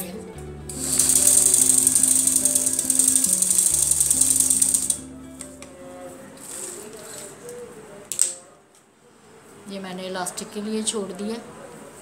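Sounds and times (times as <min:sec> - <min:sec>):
background music: 0:00.0 - 0:06.9
sewing machine stitching: 0:00.8 - 0:05.0.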